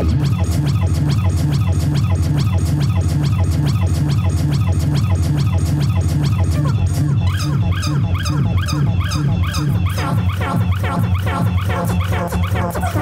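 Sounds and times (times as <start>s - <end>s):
pulsing bass: 0.0s - 13.0s.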